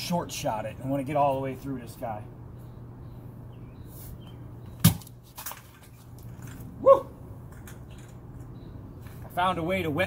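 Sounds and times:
short cry: 6.8s - 7.2s.

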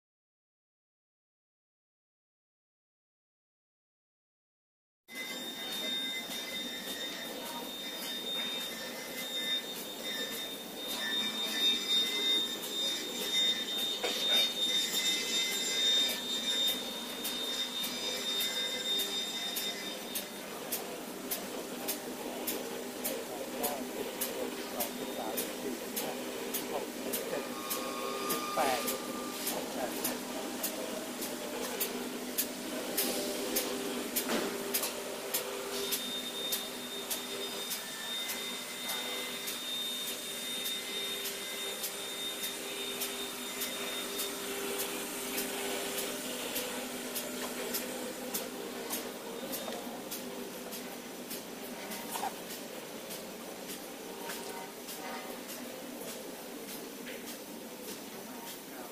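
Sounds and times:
machine humming: 5.1s - 58.9s.

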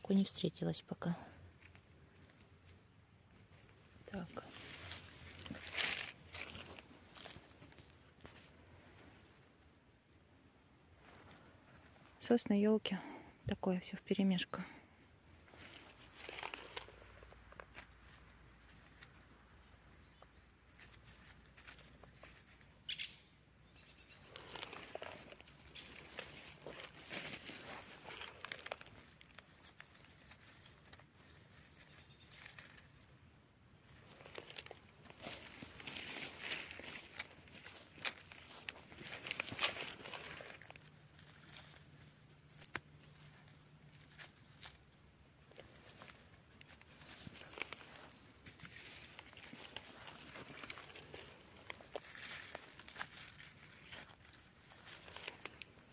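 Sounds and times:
branches and grass brushed: 0.0s - 55.9s
footsteps on forest floor: 3.5s - 9.4s, 15.4s - 23.0s, 24.1s - 33.0s, 33.8s - 55.9s
hand parting grass: 3.7s - 9.3s, 15.4s - 19.2s, 24.2s - 33.0s, 33.8s - 55.9s.

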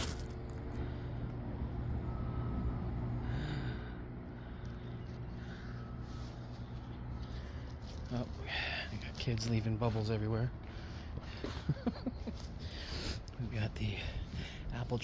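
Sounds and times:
low machine hum: 0.0s - 15.0s.

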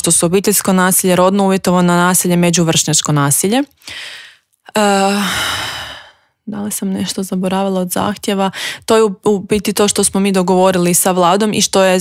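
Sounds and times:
woman inhaling: 3.8s - 4.5s, 5.2s - 6.4s, 8.5s - 8.9s.

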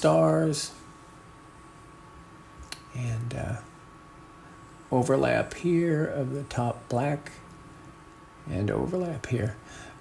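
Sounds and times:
faint steady hum: 0.0s - 10.0s
sharp click: 2.6s - 2.9s.

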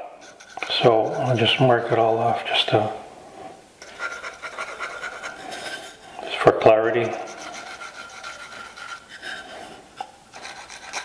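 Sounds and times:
pencil scratching on wood: 0.2s - 2.4s, 3.8s - 6.2s, 6.9s - 9.8s, 10.4s - 11.0s.

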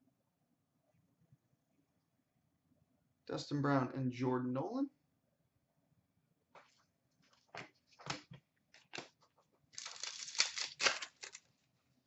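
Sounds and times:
cards tapping and rustling: 7.4s - 11.4s
cards sliding and shuffling: 9.8s - 11.4s.

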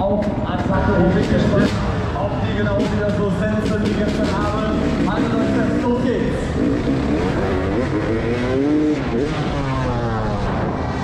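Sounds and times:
motocross bike engine revving: 0.6s - 11.0s.

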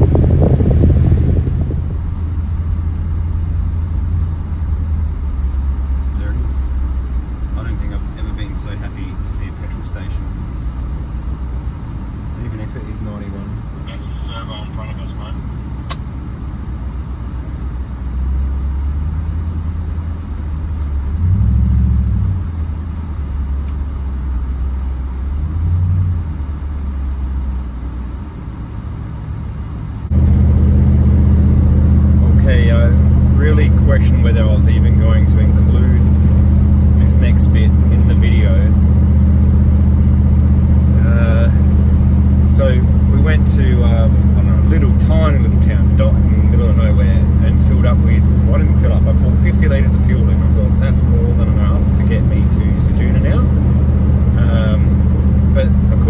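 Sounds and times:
car engine and road drone: 0.0s - 56.0s
man's voice: 12.4s - 15.4s, 42.6s - 53.5s.

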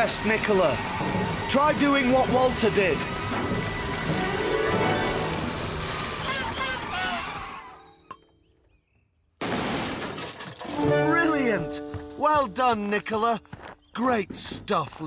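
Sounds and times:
steam engine hissing: 0.0s - 7.6s, 10.7s - 13.4s
shattering crash: 9.4s - 10.8s
cartoon music: 10.8s - 13.4s.

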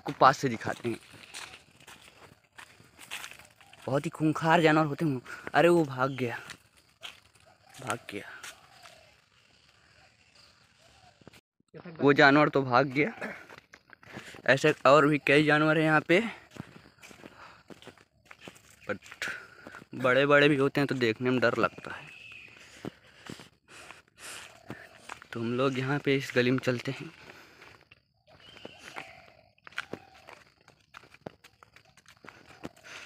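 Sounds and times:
footsteps in dry leaves: 0.0s - 11.4s, 16.2s - 33.0s.

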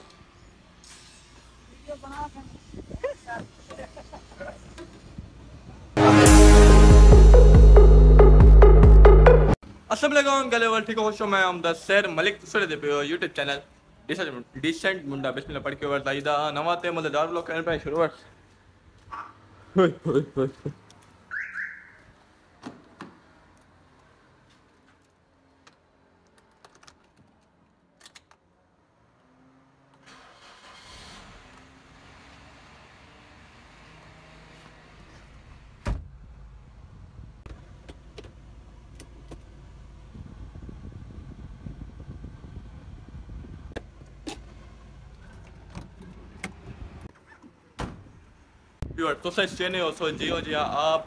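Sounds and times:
car alarm rising chirps: 21.3s - 22.1s.

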